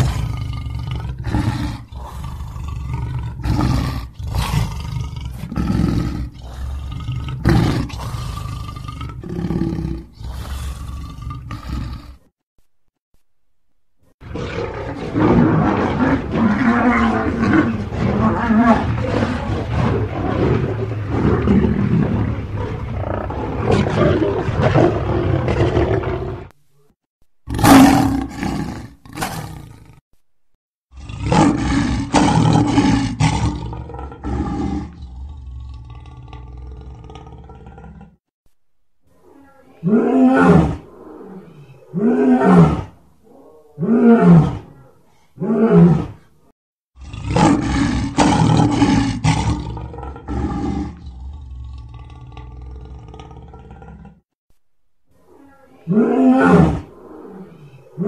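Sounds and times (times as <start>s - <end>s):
lion roaring: 0.0s - 12.3s, 14.2s - 26.5s, 27.5s - 30.0s, 30.9s - 38.2s, 39.2s - 46.3s, 47.0s - 54.2s, 55.2s - 58.0s.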